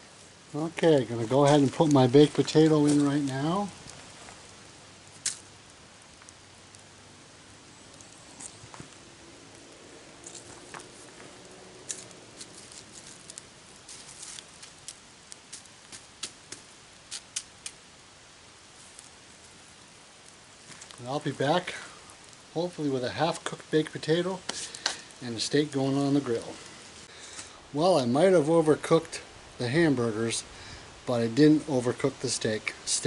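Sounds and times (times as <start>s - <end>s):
campfire crackling and popping: 0.0s - 33.0s
faint steady hiss: 0.0s - 33.0s.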